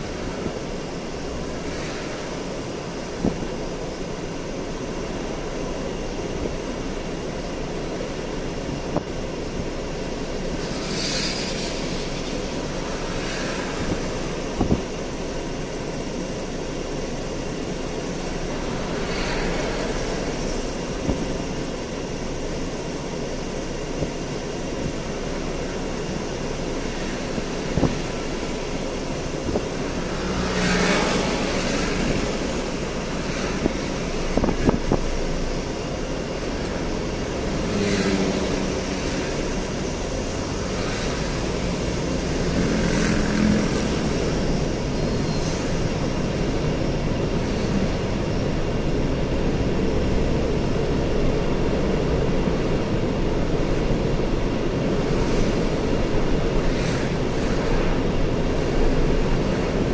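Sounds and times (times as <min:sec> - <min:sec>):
hum of engines and tyres: 0:00.0 - 0:59.9
vehicles passing: 0:00.0 - 0:59.9.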